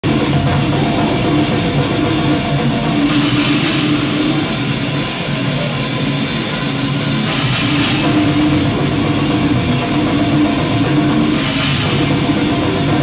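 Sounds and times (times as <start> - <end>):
distorted guitars and bass: 0.0 - 13.0
fast dense drumming: 0.0 - 13.0.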